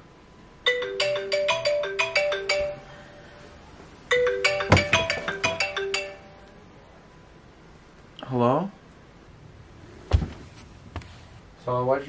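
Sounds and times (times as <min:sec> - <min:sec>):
marimba ringtone: 0:00.7 - 0:03.5, 0:04.1 - 0:06.5.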